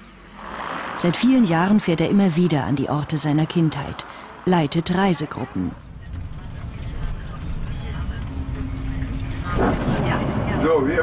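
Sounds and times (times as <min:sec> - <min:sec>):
low vehicle rumble: 0:00.0 - 0:11.0
people's voices: 0:01.0 - 0:11.0.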